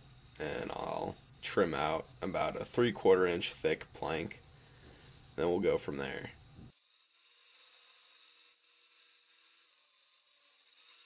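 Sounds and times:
handsaw cutting wood: 6.7s - 11.0s.

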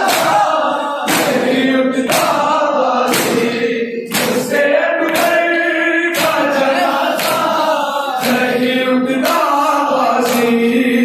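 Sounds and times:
chest slaps: 0.0s - 2.5s, 3.1s - 5.4s, 6.1s - 6.5s, 7.1s - 7.6s
men chanting in unison: 0.0s - 11.0s.

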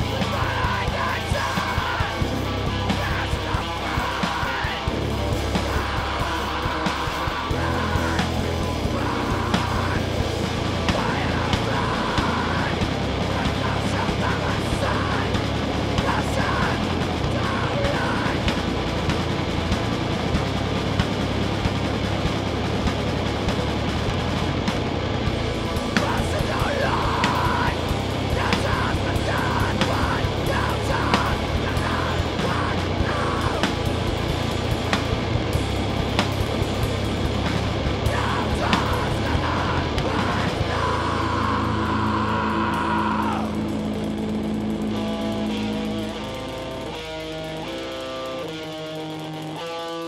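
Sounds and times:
bass guitar: 0.0s - 50.0s
electric guitars: 0.0s - 50.0s.

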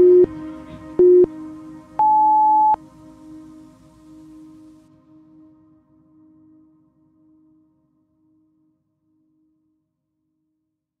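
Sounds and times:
long high beep: 0.0s - 0.3s, 2.0s - 2.8s
soft background music: 0.0s - 9.9s
short low beep: 2.0s - 2.8s.

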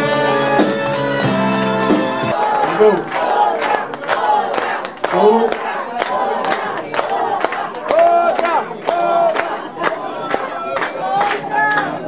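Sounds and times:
audience shouting and cheering: 0.0s - 12.0s
hand claps: 2.0s - 12.0s.

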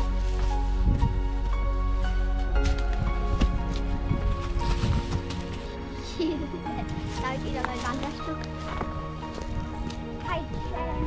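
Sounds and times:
held music chords: 0.0s - 11.0s.

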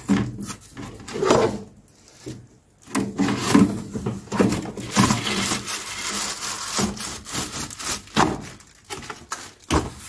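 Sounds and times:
cardboard scraping inside microwave: 3.0s - 8.5s.

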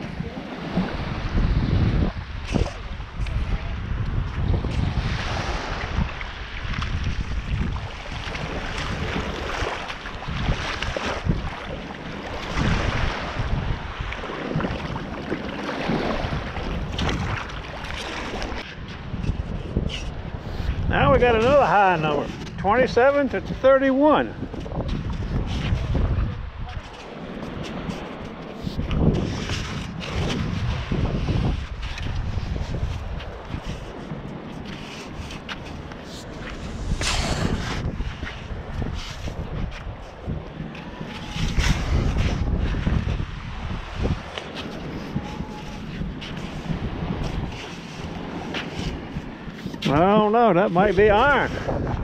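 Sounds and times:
wind buffeting microphone: 0.0s - 52.0s
metal scoop digging sand: 36.1s - 37.9s.

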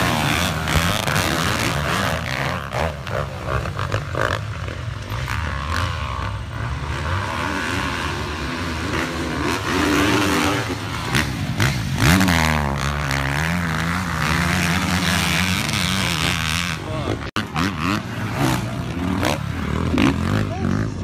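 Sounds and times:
dirt bike engines revving: 0.0s - 21.0s
sharp engine crackles: 0.0s - 21.0s.

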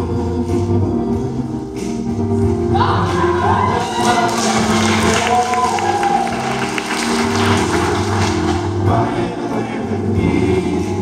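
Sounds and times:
audience cheering and whooping: 2.8s - 8.5s
men's chorus singing: 7.0s - 11.0s.

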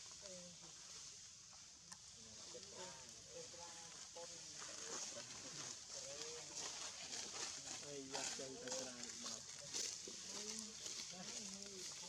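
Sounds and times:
faint voices talking: 1.9s - 12.0s.

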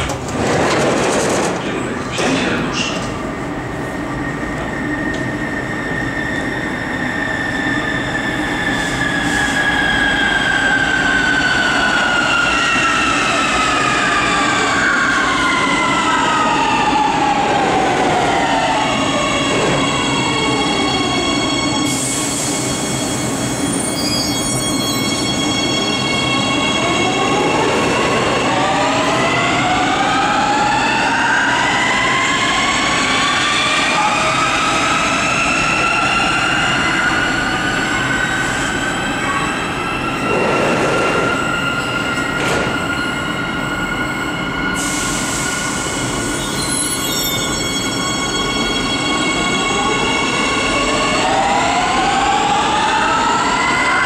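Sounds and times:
rail and wheel noise: 0.0s - 54.0s.

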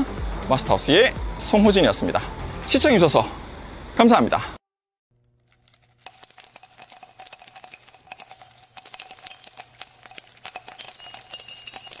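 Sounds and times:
jingling bells: 5.5s - 12.0s.

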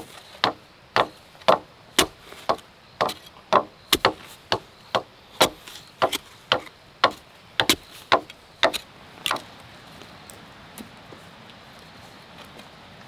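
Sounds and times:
digging tool striking soil: 0.0s - 9.4s.

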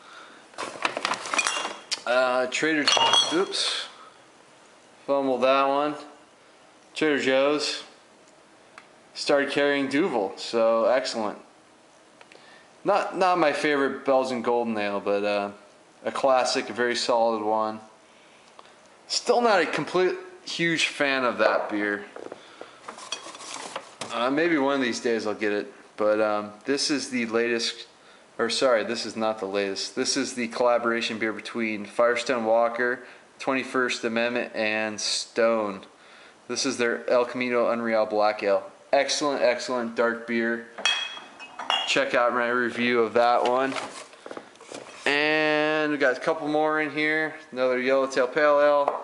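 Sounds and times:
glass bottles clinking: 1.2s - 1.9s, 2.8s - 3.7s, 40.8s - 42.1s.

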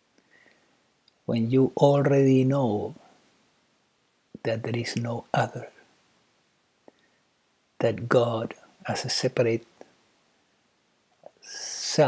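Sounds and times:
man speaking: 1.2s - 3.2s, 4.4s - 5.9s, 7.8s - 9.8s, 11.3s - 12.0s.

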